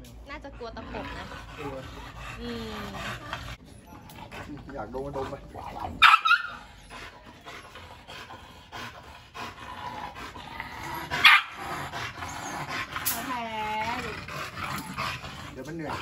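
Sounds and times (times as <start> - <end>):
dog yelping: 5.7 - 7.0, 10.8 - 14.1
dog barking: 6.0 - 6.6, 11.2 - 11.6.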